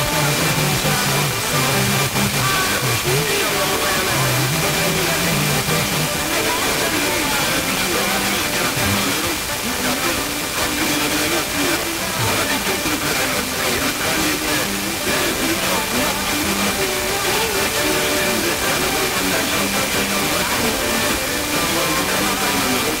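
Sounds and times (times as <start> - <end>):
radio music with singing: 0.0 - 23.0
radio static hiss: 0.0 - 23.0.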